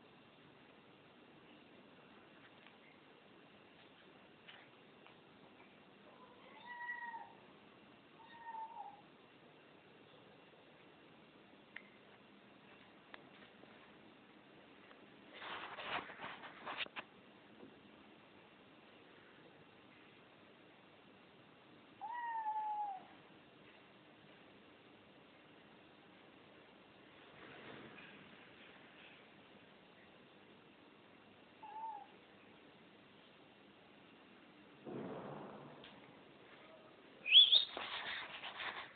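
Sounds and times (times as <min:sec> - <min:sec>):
cat meowing: 0:06.2 - 0:07.4, 0:08.2 - 0:09.0, 0:22.0 - 0:23.2, 0:31.6 - 0:32.2.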